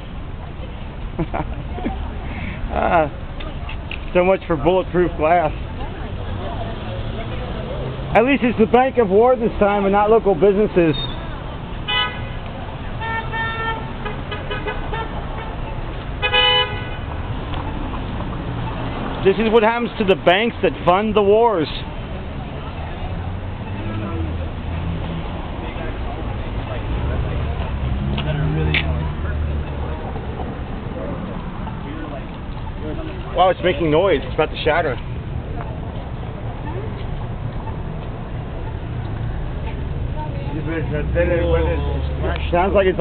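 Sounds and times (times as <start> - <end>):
street traffic rumble: 0.0 - 43.0
vehicle horns tooting: 11.9 - 12.4, 13.0 - 17.1.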